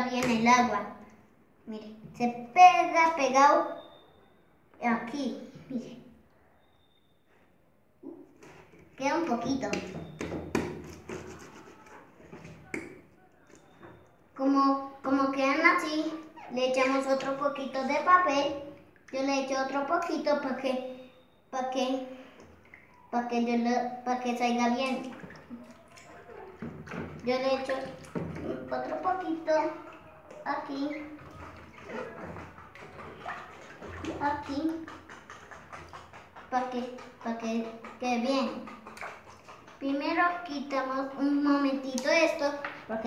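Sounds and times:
hands patting wet paper pulp: 9.7 - 13.8, 24.8 - 40.8.

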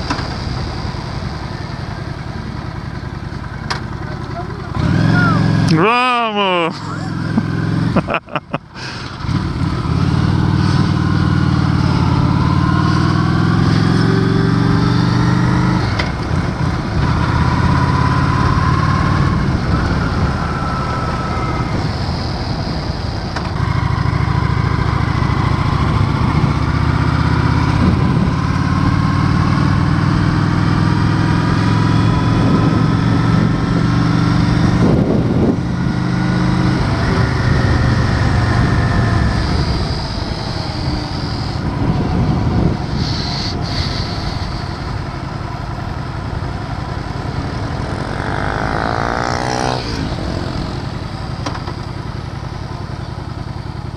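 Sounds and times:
motorcycle engine revving: 0.0 - 53.9.

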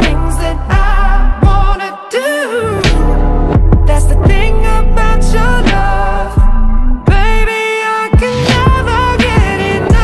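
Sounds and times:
man singing: 0.0 - 10.0
deep kick drums: 0.7 - 1.8, 2.9 - 4.6, 5.7 - 7.5.

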